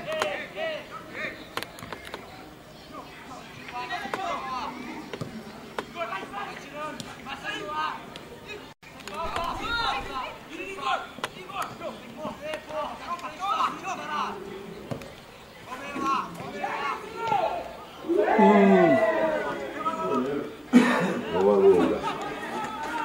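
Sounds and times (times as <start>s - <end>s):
men calling out: 15.7s - 23.0s.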